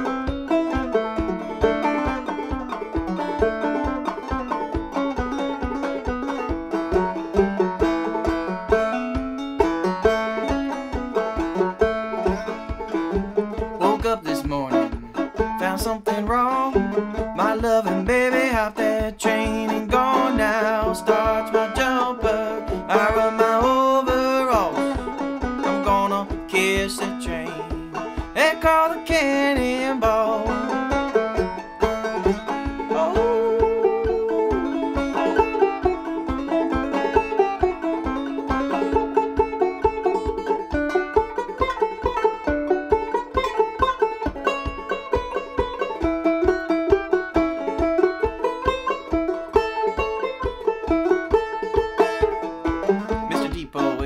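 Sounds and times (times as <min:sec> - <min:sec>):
banjo picking: 0:00.0 - 0:54.0.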